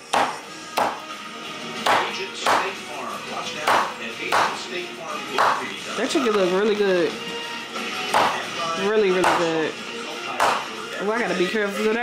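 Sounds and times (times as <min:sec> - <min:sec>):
background music: 0:00.0 - 0:12.0
cleaver chopping on wooden board: 0:00.1 - 0:01.1, 0:01.8 - 0:02.7, 0:03.7 - 0:04.6, 0:05.4 - 0:05.6, 0:08.1 - 0:08.4, 0:09.2 - 0:09.5, 0:10.4 - 0:10.7.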